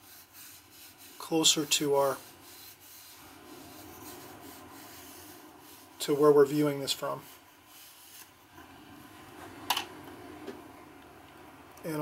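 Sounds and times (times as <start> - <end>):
brush rubbing on paper: 0.0 - 8.5.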